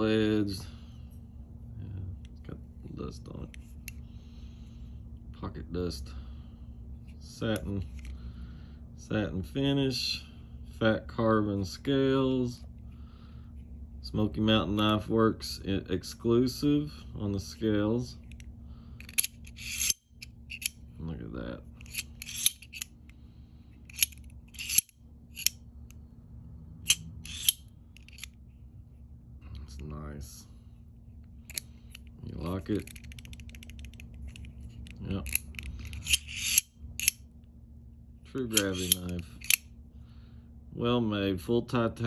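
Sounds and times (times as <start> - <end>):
knife blade metallic scrape: 19.1 - 20.8, 21.8 - 23.0, 23.9 - 25.6, 26.8 - 28.4, 35.2 - 37.2, 38.5 - 39.6
knife blade clicks: 38.5 - 39.6.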